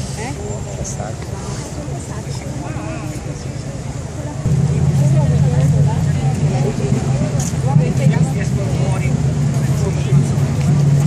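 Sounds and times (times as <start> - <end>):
chatter of people walking: 0.0 - 11.0
steady low rumble: 4.4 - 11.0.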